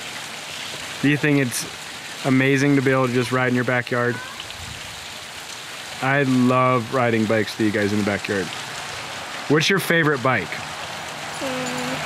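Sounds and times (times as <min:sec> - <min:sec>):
steady outdoor hiss: 0:00.0 - 0:12.0.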